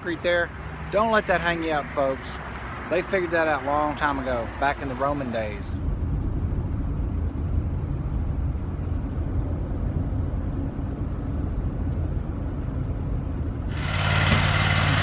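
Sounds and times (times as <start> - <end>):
road rumble inside a van: 0.0 - 15.0
small engine running: 13.7 - 15.0.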